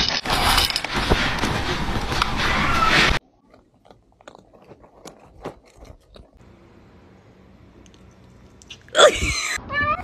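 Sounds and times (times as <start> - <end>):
cats crunching dry kibble: 3.3 - 6.4.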